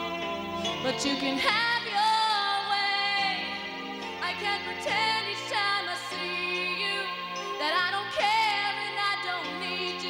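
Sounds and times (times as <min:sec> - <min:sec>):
instrumental accompaniment: 0:00.0 - 0:10.0
woman singing: 0:00.0 - 0:10.0.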